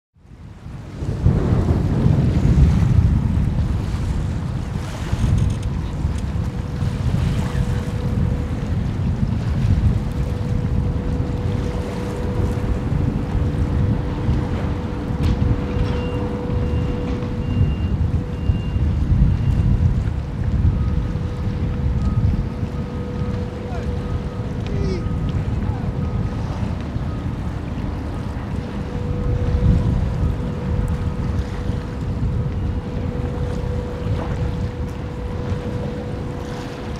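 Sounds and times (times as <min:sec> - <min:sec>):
wind buffeting microphone: 0:00.2 - 0:36.9
steady hum: 0:06.6 - 0:36.9
faint high beeps: 0:15.0 - 0:20.0, 0:20.7 - 0:36.9.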